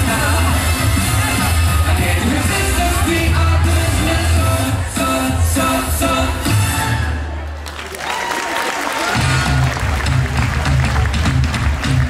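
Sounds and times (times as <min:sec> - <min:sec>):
audience applause: 0:07.5 - 0:12.0.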